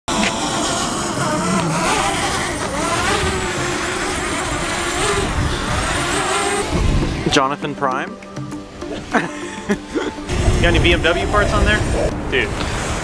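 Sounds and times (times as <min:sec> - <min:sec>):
drone propellers buzzing: 0:00.1 - 0:13.0.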